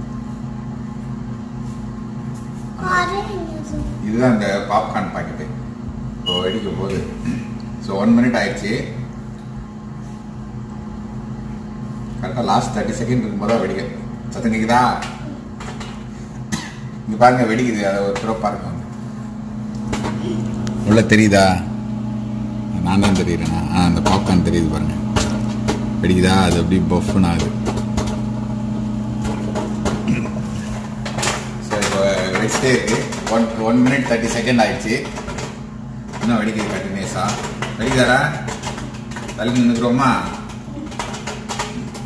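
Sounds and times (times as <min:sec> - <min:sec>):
microwave oven humming: 0:00.0 - 0:42.0.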